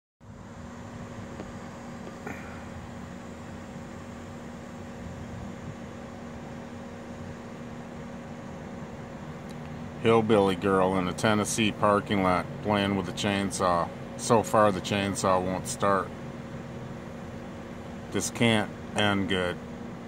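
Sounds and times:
steady mechanical hum: 0.2s - 20.0s.

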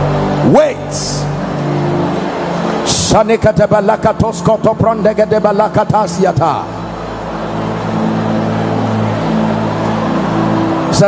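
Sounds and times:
soft sustained musical chord: 0.0s - 11.0s.

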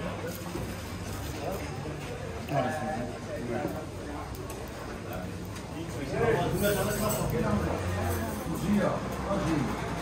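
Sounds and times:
people talking in background: 0.0s - 10.0s
street bustle: 0.0s - 10.0s.

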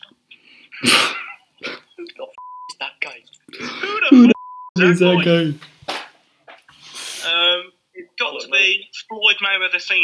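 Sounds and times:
person laughing: 3.6s - 4.4s.

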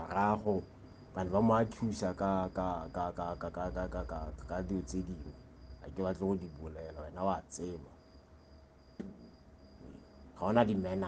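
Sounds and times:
insect chirping: 0.0s - 11.0s.

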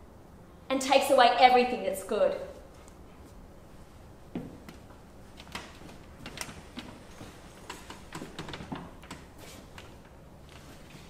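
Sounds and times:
footsteps on a stage floor: 4.3s - 5.0s
small irregular clicks and knocks: 5.4s - 10.2s.

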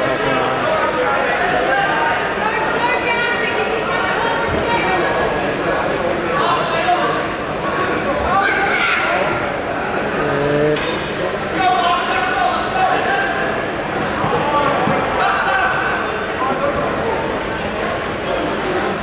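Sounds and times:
people calling out and talking: 0.0s - 17.6s.

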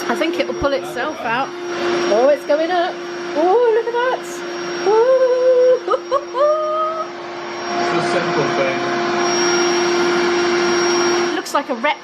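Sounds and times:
electric air pump whirring: 0.0s - 12.0s.

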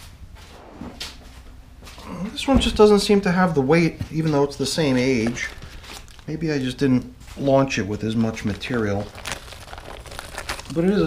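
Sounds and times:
plastic bin scraping: 0.4s - 3.2s.

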